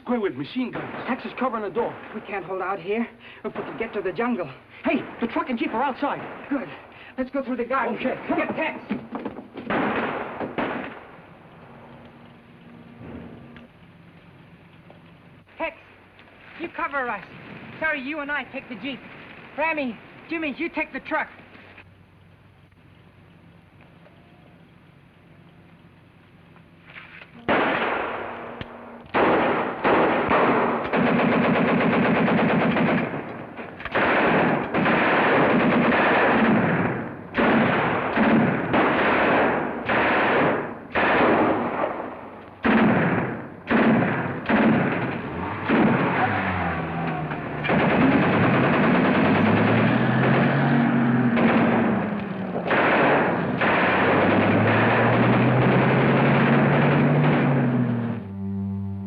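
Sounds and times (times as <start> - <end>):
automatic gunfire: 9.6 - 11.1, 27.5 - 58.0
low engine note: 11.0 - 16.4, 21.7 - 31.0, 41.5 - 59.0.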